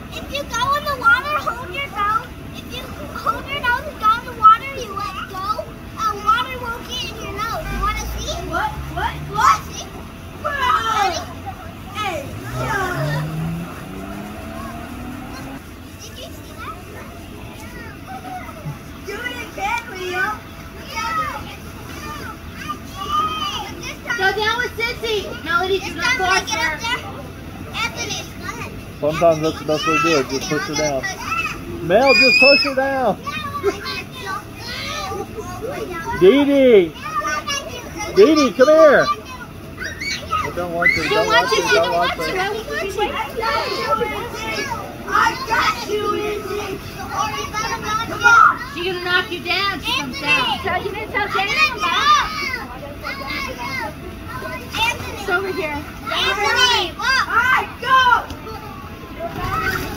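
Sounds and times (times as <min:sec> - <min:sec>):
children shouting and squealing: 0:00.0 - 0:59.9
low hum rising in pitch: 0:12.0 - 0:15.6.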